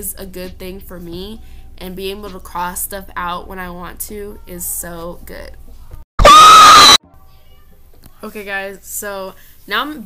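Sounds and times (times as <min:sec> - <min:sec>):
high-pitched scream: 0:06.2 - 0:07.0.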